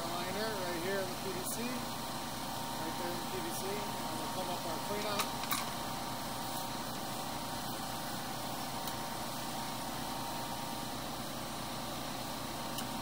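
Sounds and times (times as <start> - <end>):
machine hum with hiss: 0.0 - 13.0.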